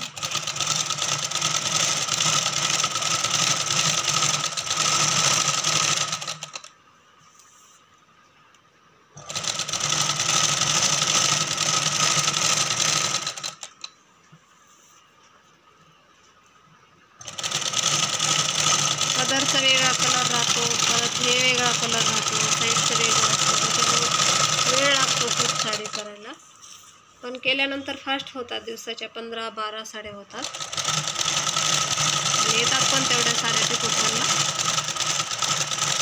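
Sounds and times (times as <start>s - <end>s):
sewing machine running: 0.0s - 6.7s, 9.2s - 13.9s, 17.2s - 26.2s, 30.4s - 36.0s.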